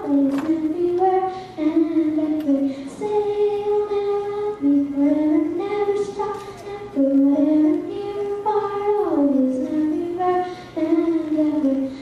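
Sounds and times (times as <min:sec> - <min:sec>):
girl singing into microphone: 0:00.0 - 0:12.0.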